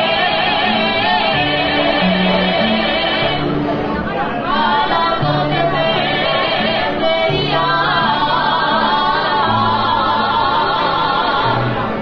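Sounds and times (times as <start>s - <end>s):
man and woman singing duet: 0.0s - 3.5s, 4.4s - 12.0s
acoustic guitar: 0.0s - 12.0s
piano accordion: 0.0s - 12.0s.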